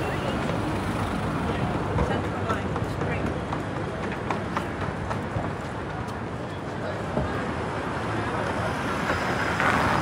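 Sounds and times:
city street traffic: 0:00.0 - 0:10.0.

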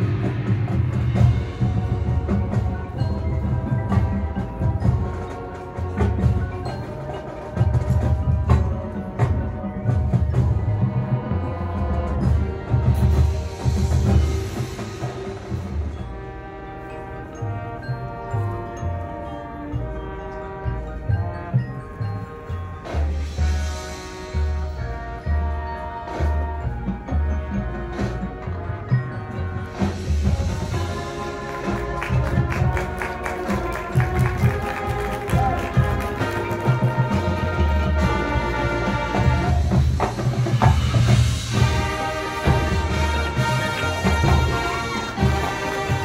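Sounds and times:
drums pulsing: 0:00.0 - 0:16.6, 0:20.7 - 0:46.0
held brass chords: 0:00.0 - 0:46.0
marching band playing: 0:00.0 - 0:46.0
marimba and mallet percussion: 0:00.0 - 0:46.0.

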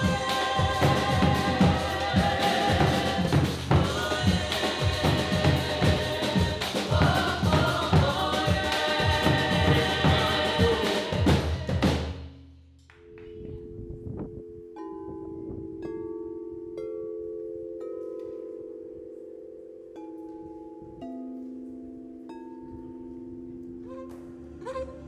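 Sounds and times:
band music with singing: 0:00.0 - 0:12.1.

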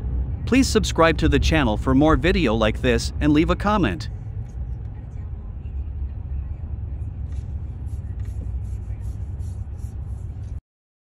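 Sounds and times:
car engine rumble: 0:00.0 - 0:10.6.

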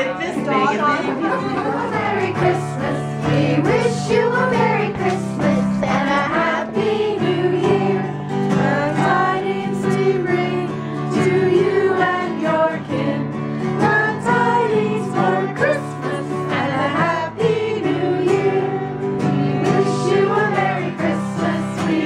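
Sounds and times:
guitar accompaniment: 0:00.0 - 0:22.0
carolers singing together: 0:00.1 - 0:22.0.

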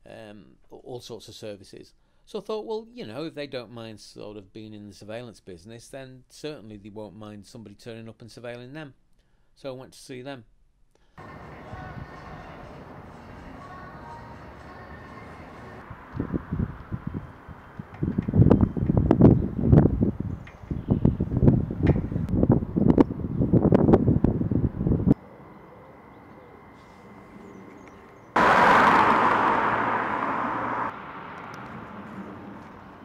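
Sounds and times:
wind buffeting microphone: 0:11.2 - 0:13.5, 0:15.7 - 0:25.2.

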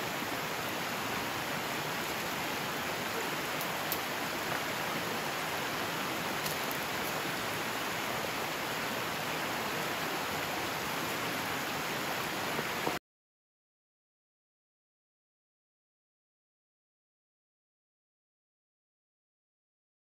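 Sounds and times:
stream rushing over stones: 0:00.0 - 0:13.0.

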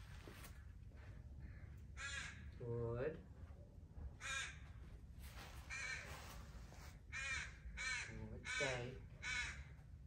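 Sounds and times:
crow cawing: 0:01.4 - 0:02.5, 0:04.2 - 0:04.7, 0:05.7 - 0:06.1, 0:07.1 - 0:09.7.

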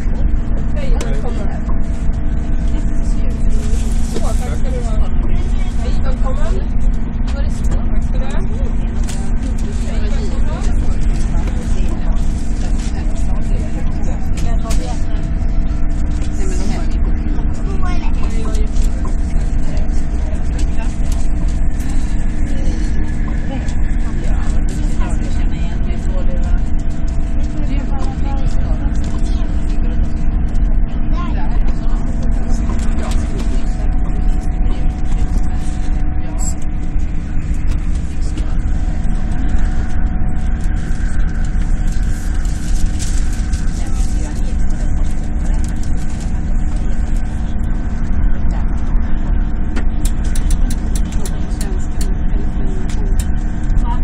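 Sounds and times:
humming tones: 0:00.0 - 0:54.0
train interior rumble: 0:00.0 - 0:54.0.

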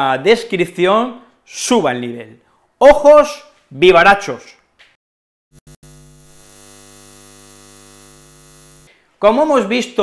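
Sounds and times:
neon sign buzz: 0:05.5 - 0:08.9
neon sign crackles: 0:05.6 - 0:08.9.

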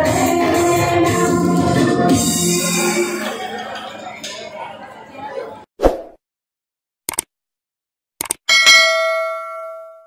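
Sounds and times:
notification bell ding: 0:08.5 - 0:10.0.

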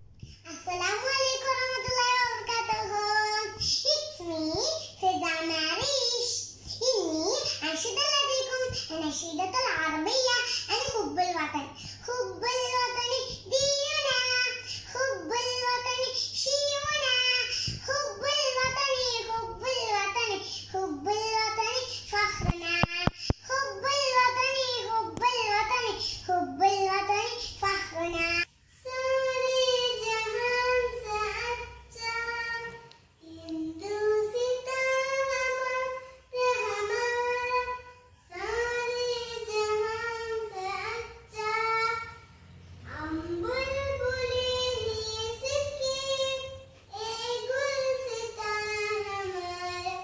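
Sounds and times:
girl singing unaccompanied: 0:00.0 - 0:50.0.

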